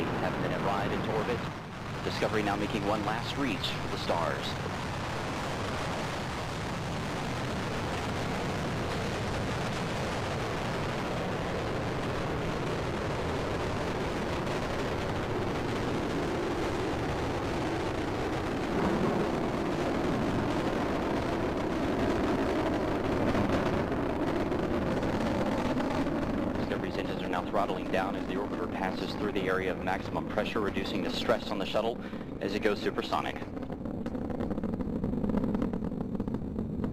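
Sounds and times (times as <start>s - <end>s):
rocket exhaust roar: 0.0s - 36.9s.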